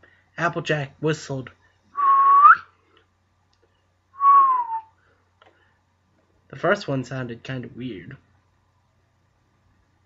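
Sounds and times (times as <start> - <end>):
man whistling: 2.0 - 2.7, 4.2 - 5.0.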